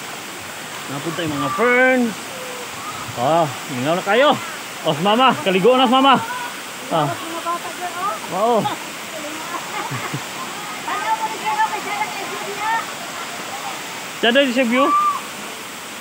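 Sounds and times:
waterfall pouring into pool: 0.0s - 16.0s.

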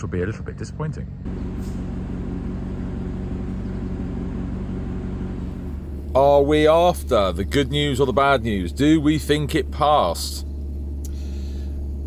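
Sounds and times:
car engine idling: 1.2s - 12.0s.

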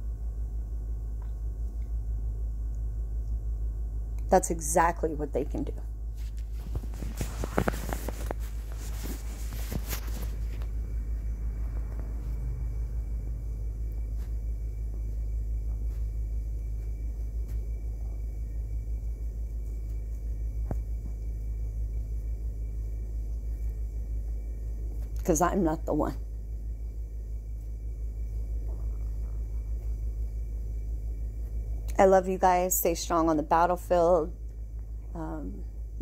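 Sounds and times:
steady low rumble: 0.0s - 36.0s.

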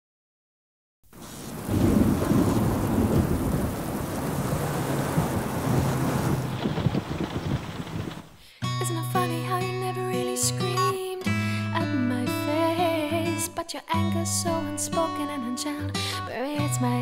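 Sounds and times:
rain falling: 1.1s - 8.4s
deep rumbling thunder: 1.2s - 8.4s.

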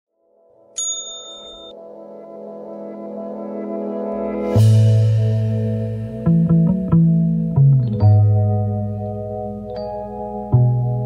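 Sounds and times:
soft background music: 0.3s - 11.0s
bell-like ding: 0.8s - 1.8s.

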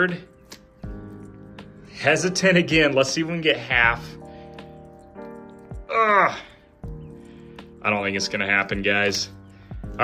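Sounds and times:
music with sustained notes: 0.0s - 10.0s.

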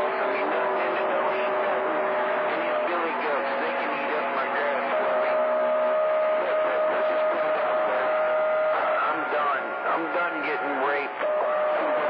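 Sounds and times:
faint wavering voices: 0.0s - 12.0s
radio static hiss: 0.0s - 12.0s.

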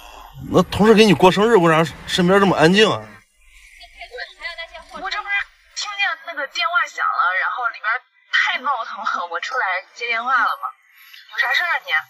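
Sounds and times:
person talking: 0.0s - 3.1s.

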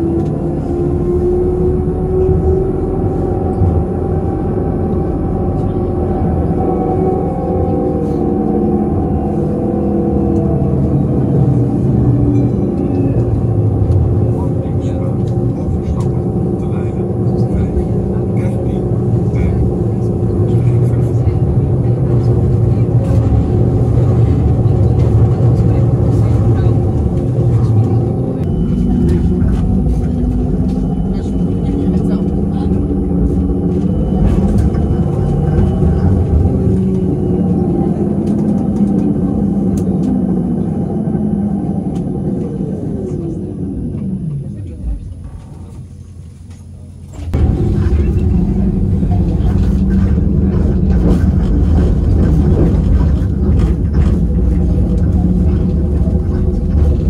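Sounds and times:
tram motor hum: 0.0s - 57.0s
tram wheels rumbling: 0.0s - 57.0s.

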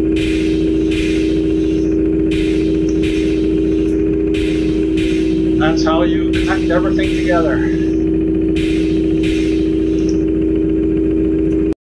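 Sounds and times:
steady machine hum: 0.0s - 11.8s.

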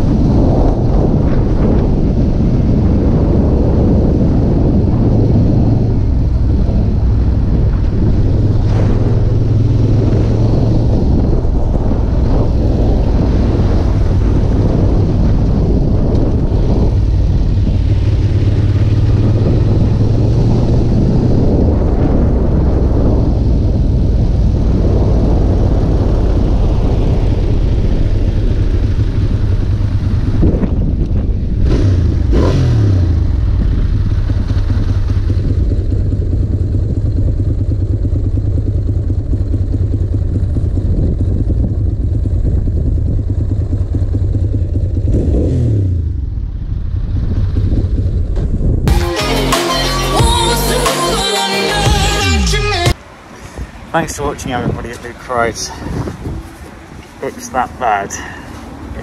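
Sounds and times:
wind noise: 0.0s - 49.0s, 52.9s - 59.0s
motorcycle engine running: 0.0s - 49.5s.

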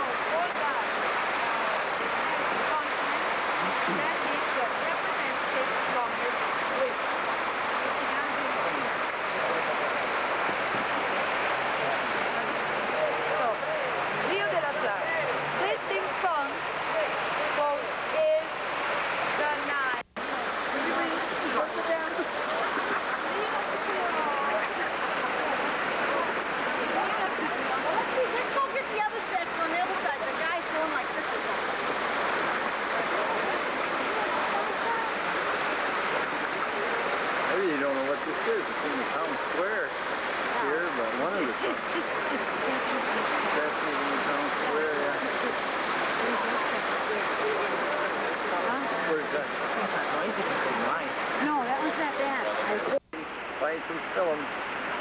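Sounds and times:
fountain water splashing: 0.0s - 55.0s
murmur of voices: 0.0s - 55.0s.

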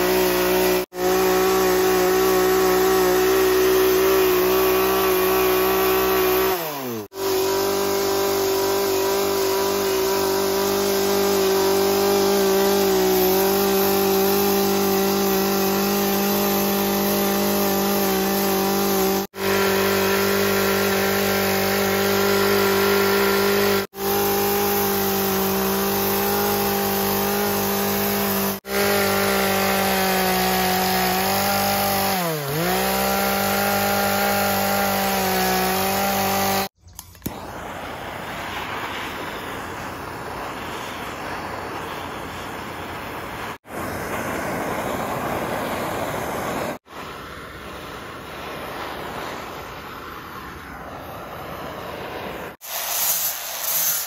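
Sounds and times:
chainsaw cutting wood: 0.0s - 39.0s.

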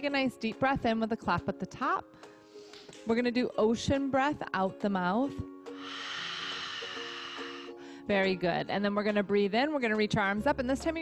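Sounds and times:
soft background music: 0.0s - 11.0s
breathy exhale: 5.7s - 8.1s.

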